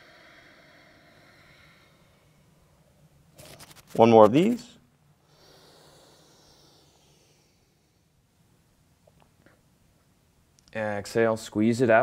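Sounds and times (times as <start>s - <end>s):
slow breath in: 0.0s - 2.8s, 5.2s - 8.2s.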